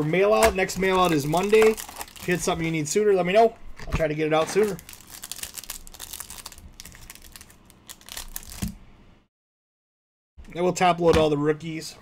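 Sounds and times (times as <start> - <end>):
plastic wrapper crinkling and tearing: 0.6 - 2.8, 4.4 - 8.8.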